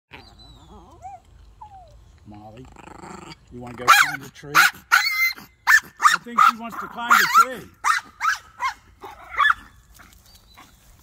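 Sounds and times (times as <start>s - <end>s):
small dog whining: 0.1s - 2.6s, 4.9s - 5.5s
dog yelp: 3.8s - 9.8s.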